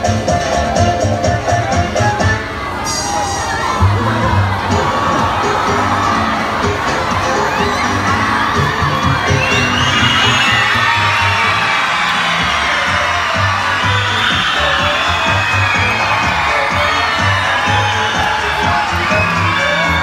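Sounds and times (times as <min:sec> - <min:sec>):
audience shouting and cheering: 0:00.0 - 0:20.0.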